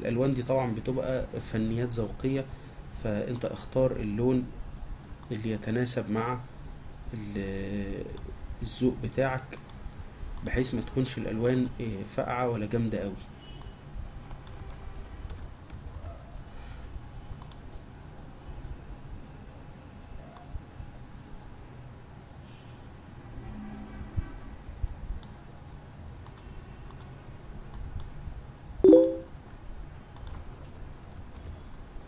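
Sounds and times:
low steady background hum: 0:00.0 - 0:23.0
computer keyboard and mouse clicks: 0:14.2 - 0:16.1, 0:17.4 - 0:17.7, 0:26.2 - 0:27.1, 0:30.2 - 0:31.6.

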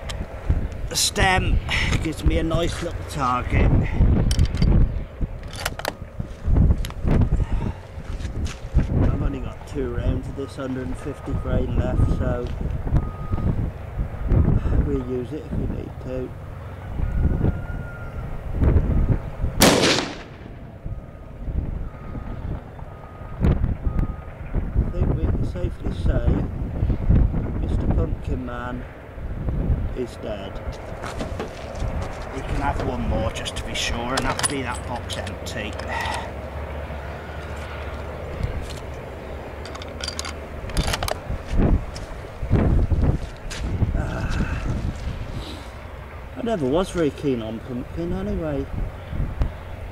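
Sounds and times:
rifle shot: 0:19.6 - 0:20.6
handling clicks: 0:37.4 - 0:41.3.

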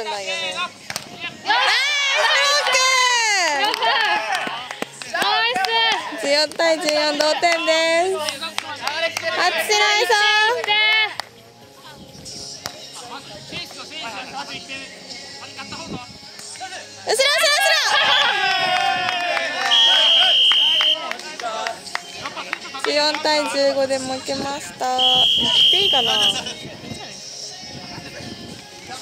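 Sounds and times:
faint players' voices: 0:00.0 - 0:29.0
hand slapping volleyball: 0:00.9 - 0:01.1, 0:12.6 - 0:12.8
whistle blast: 0:19.6 - 0:21.0, 0:25.0 - 0:26.5.

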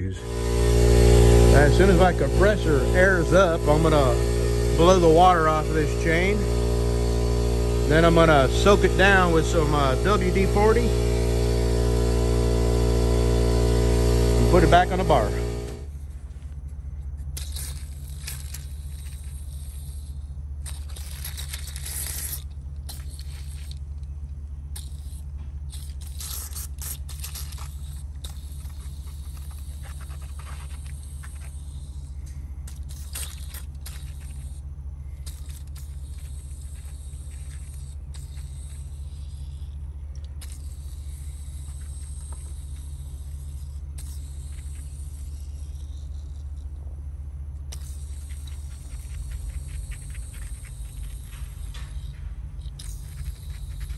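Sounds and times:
steady low hum: 0:00.0 - 0:53.9
aerosol spray hissing: 0:00.2 - 0:15.9.

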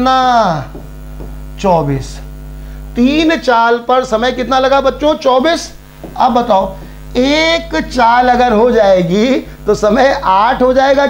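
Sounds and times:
man speaking: 0:00.0 - 0:00.8, 0:01.6 - 0:02.3, 0:03.0 - 0:11.0
electrical mains hum: 0:00.0 - 0:11.0.

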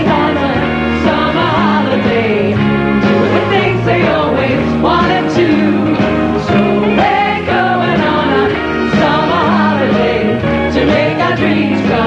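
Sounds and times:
band playing: 0:00.0 - 0:12.0.

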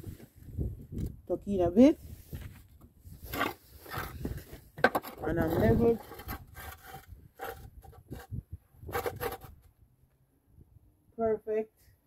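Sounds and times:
spirit level scraping on concrete: 0:03.1 - 0:09.7.

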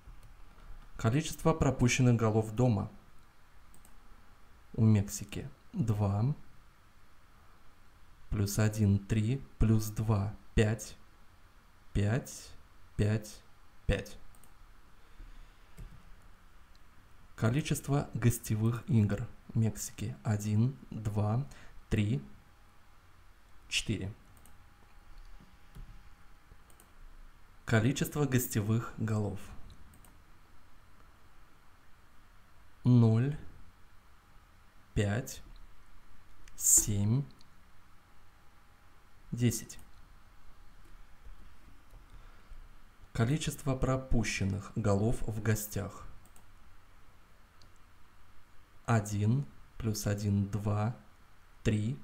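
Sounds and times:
faint computer mouse click: 0:03.2 - 0:04.0, 0:14.3 - 0:14.6, 0:26.6 - 0:27.0, 0:29.7 - 0:30.2
man's voice: 0:39.4 - 0:39.8.

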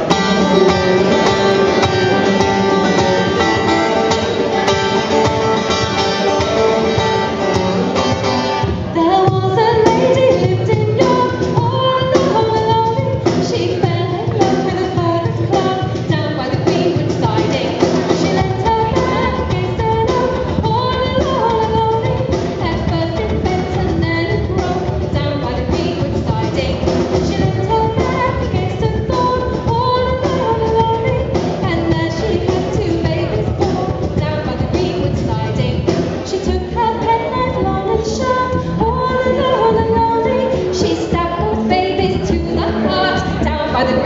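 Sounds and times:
acoustic guitar: 0:00.0 - 0:44.0
cajon: 0:00.0 - 0:44.0
fretless bass: 0:00.0 - 0:44.0
person singing: 0:00.0 - 0:44.0.

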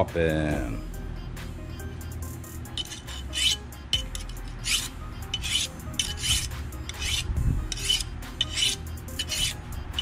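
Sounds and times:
knife scraping sharpening stone: 0:02.7 - 0:10.0.

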